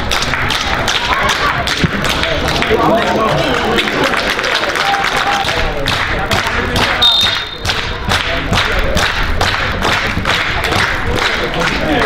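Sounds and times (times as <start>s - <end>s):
supporters beating rhythm: 5.0s - 12.0s
referee's whistle: 7.0s - 7.8s.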